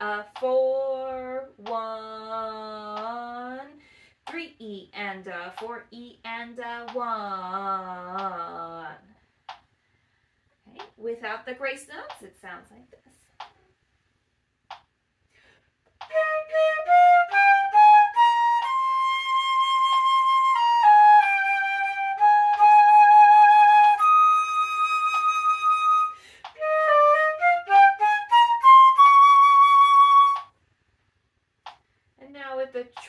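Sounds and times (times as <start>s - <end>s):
flute playing: 16.0s - 30.6s.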